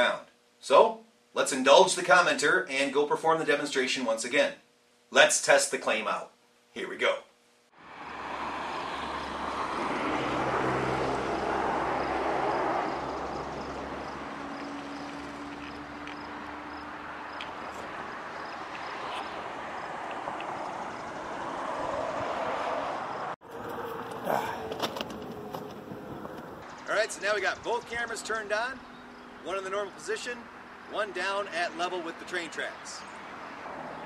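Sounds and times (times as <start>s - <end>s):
vehicles passing: 7.8s - 34.0s.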